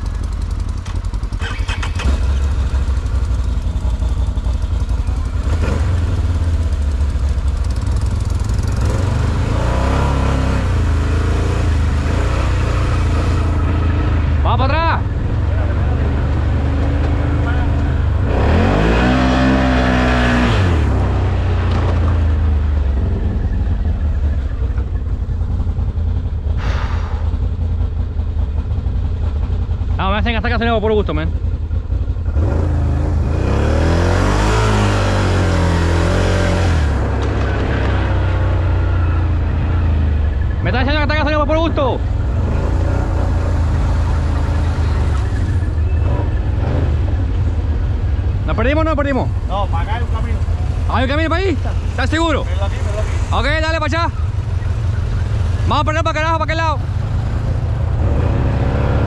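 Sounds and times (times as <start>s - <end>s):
atv engine rumbling: 0.0s - 59.0s
other engines nearby: 0.0s - 59.0s.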